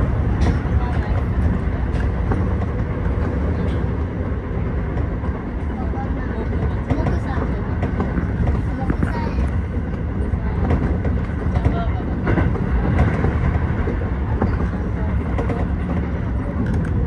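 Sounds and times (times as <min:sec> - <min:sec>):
train wheels rumbling on rail: 0:00.0 - 0:17.0.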